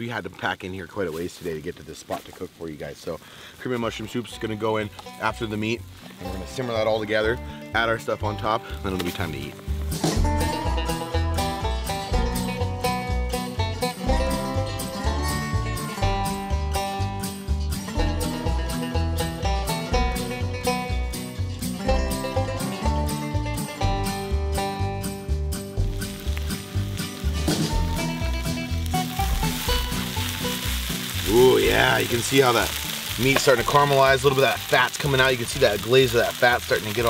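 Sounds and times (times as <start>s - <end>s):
background music with steady beat: 4.4s - 37.0s
food sizzling in a skillet: 25.5s - 37.0s.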